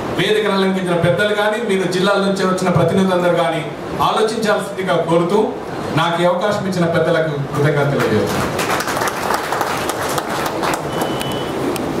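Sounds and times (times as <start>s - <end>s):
audience applauding: 8.0s - 11.5s.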